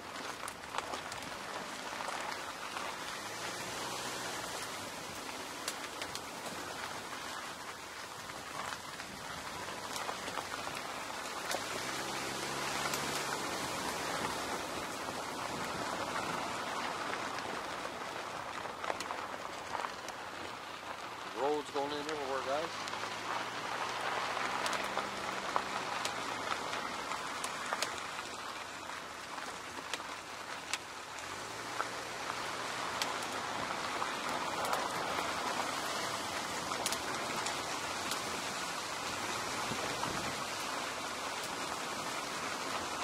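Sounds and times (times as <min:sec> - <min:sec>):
faint car engine hum: 0:00.0 - 0:43.0
tyres crackling on gravel: 0:00.0 - 0:43.0.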